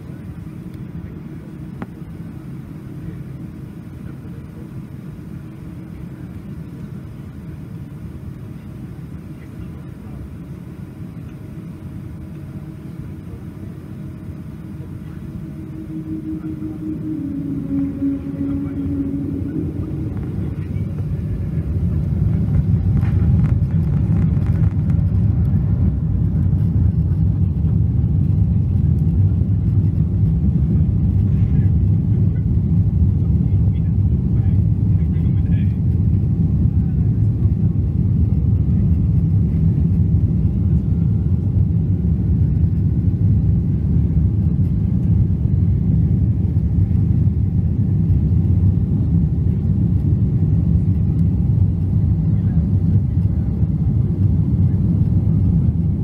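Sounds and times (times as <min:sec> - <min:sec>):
faint rising whine: 0:00.0 - 0:56.0
jet engines rumbling: 0:00.0 - 0:56.0.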